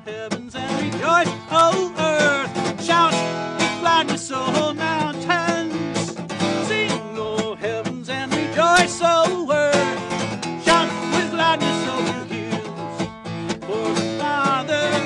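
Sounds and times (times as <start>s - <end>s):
guitar melodic lead: 0.0s - 15.0s.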